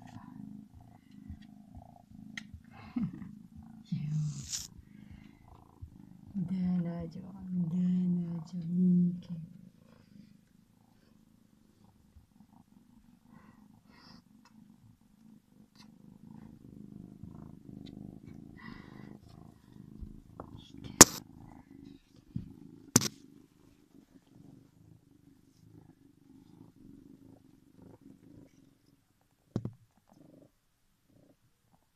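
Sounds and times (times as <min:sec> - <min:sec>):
kitten purring: 0:00.0 - 0:31.9.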